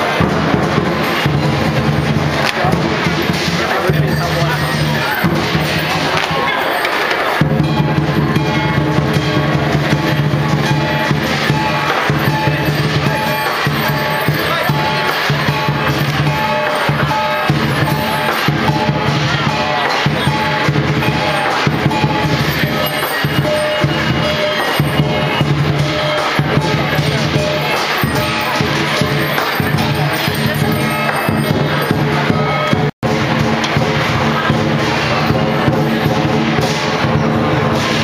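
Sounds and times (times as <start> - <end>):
big drum beating: 0.0 - 6.4, 7.4 - 38.0
cymbals clashing: 0.0 - 38.0.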